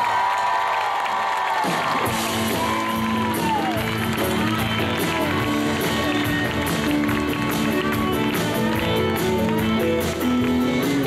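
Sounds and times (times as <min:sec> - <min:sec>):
drum kit beat: 0:01.6 - 0:11.0
electric and acoustic guitars: 0:02.0 - 0:11.0.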